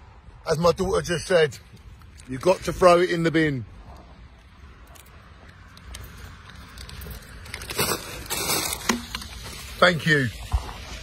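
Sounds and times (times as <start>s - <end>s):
paper bags rustling: 6.9s - 10.1s.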